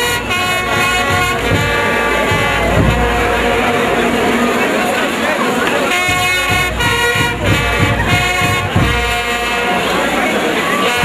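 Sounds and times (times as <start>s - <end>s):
brass band playing: 0.0s - 11.0s.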